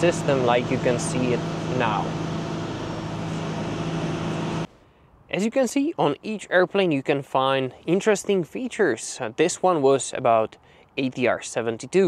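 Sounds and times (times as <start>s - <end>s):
low mechanical drone: 0.0s - 4.7s.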